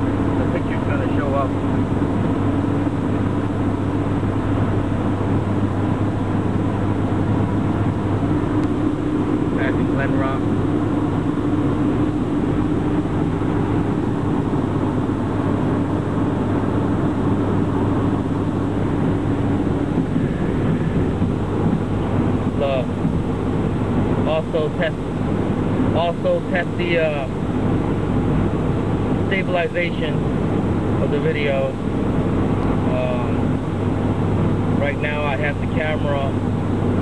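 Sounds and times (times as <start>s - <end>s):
car engine drone: 0.0s - 37.0s
road noise inside car: 0.0s - 37.0s.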